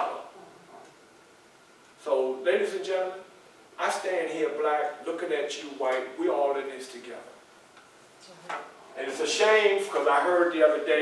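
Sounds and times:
man speaking: 0.0 - 0.3, 2.0 - 7.4, 8.9 - 11.0.

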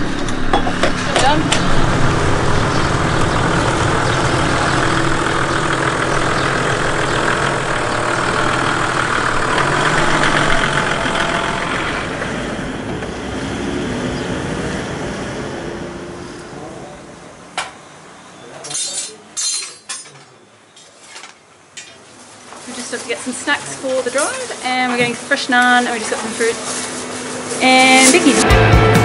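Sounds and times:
car engine running: 0.0 - 17.4.

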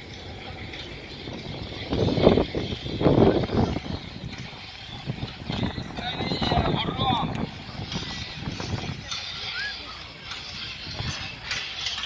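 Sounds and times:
helicopter flying over: 0.0 - 12.0.

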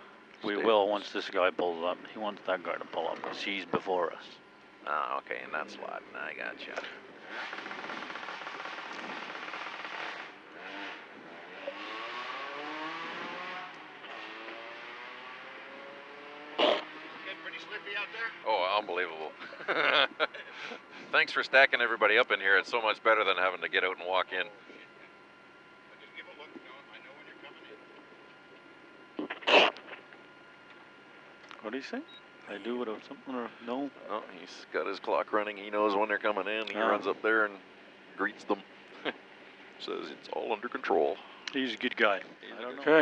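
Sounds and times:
low electrical whine: 0.0 - 43.0.

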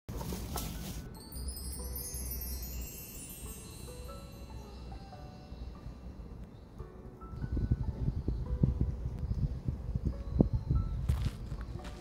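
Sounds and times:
shimmering chime sweep: 1.1 - 6.4
soft low notes: 2.4 - 12.0
steady low rumble: 4.3 - 12.0.

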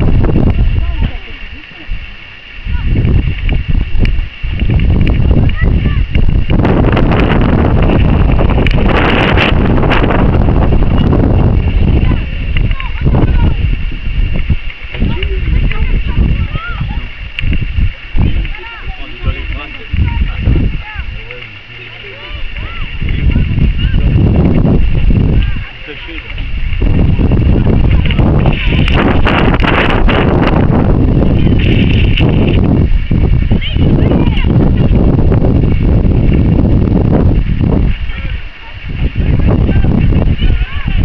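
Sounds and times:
wind rumble on microphone: 0.0 - 41.0
distant shouting: 20.7 - 24.1.

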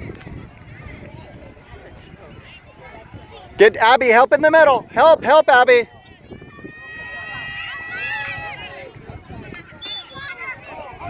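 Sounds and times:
distant voices shouting: 5.8 - 9.0.

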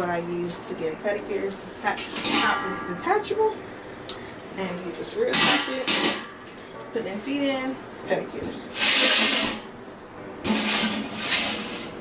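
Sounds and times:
metal bowl scraping on floor: 8.7 - 9.7, 10.5 - 12.0.

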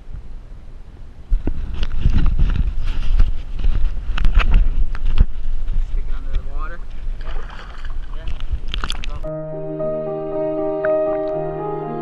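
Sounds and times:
water splashing and sloshing: 6.7 - 9.2.

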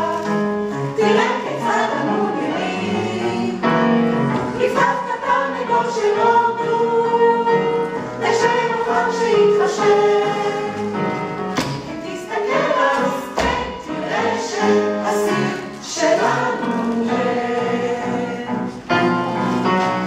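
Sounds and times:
choir singing: 0.0 - 20.0
musical accompaniment: 0.0 - 20.0.

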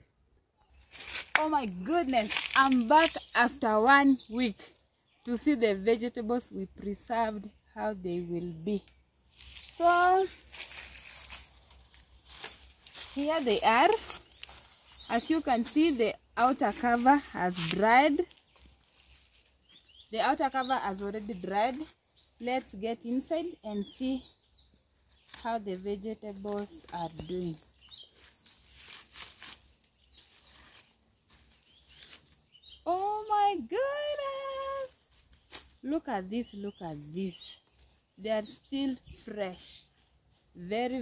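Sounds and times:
dry leaves rustling: 0.7 - 6.1, 9.2 - 36.0
sharp leaf crackles: 0.8 - 5.2, 9.3 - 22.0, 24.9 - 32.5, 34.2 - 35.9.

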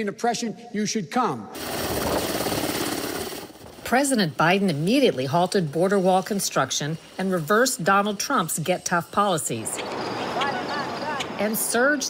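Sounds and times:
helicopter rotor and engine: 1.5 - 12.0
rushing wind: 1.6 - 4.8, 9.6 - 11.8.

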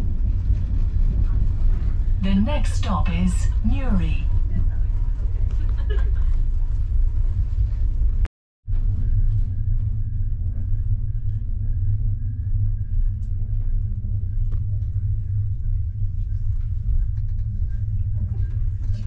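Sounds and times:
train rumble inside carriage: 0.0 - 19.0.

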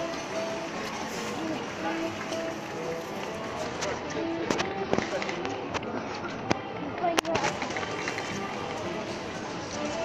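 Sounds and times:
background music: 0.0 - 10.0
many voices talking: 0.0 - 10.0.

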